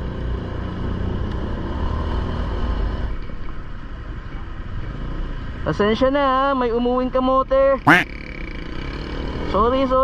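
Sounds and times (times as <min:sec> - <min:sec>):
road noise: 0:00.0 - 0:06.7.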